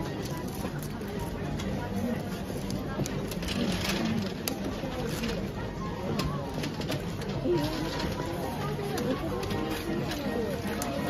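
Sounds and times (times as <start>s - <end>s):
background chatter: 0.0s - 11.0s
music: 0.0s - 11.0s
wrapping paper rustling: 2.6s - 5.7s.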